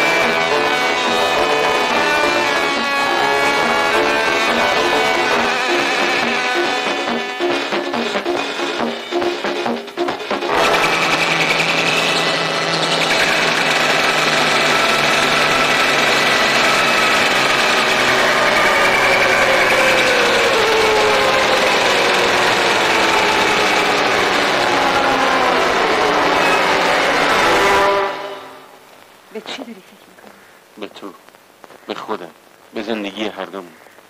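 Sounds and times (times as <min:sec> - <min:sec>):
buzzing drone with sliding tones: 0:00.0 - 0:09.8.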